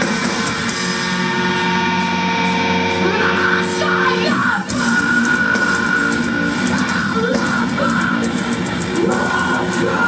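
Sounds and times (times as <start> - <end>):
ringing guitar chord: 0.0 - 5.0
heavy metal band playing live: 0.0 - 10.0
singer yelling: 2.8 - 10.0.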